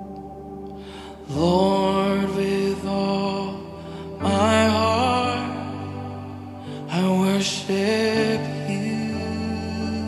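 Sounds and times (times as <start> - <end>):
sustained worship chord: 0.0 - 10.0.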